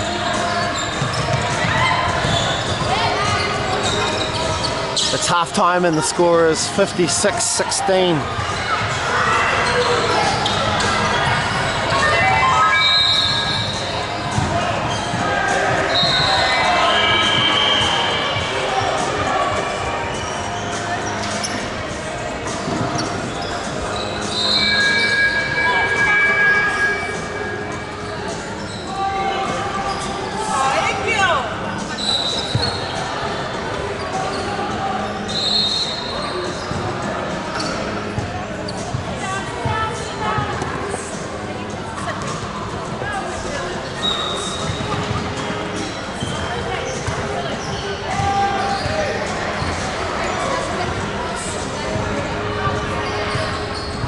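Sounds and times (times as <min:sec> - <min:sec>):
voices: 0:00.0 - 0:54.0.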